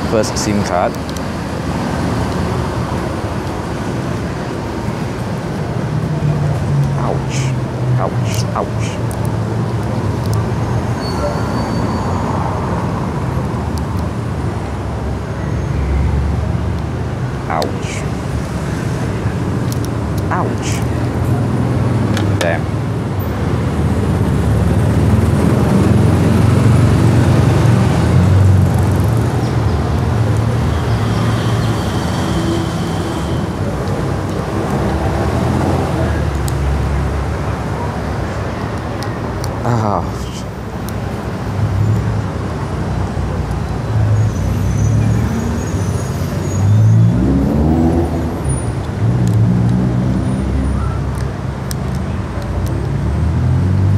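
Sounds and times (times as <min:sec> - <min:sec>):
road traffic rumble: 0:00.0 - 0:53.9.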